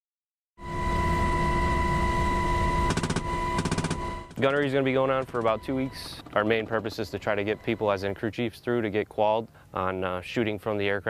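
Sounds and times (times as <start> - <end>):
helicopter engine and rotor noise: 0.6 - 8.1
machine gun bursts: 2.9 - 7.4.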